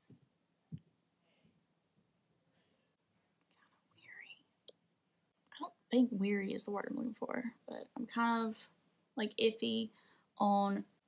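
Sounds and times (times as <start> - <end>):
woman whispering: 4.0 - 4.5
woman speaking: 5.6 - 11.0.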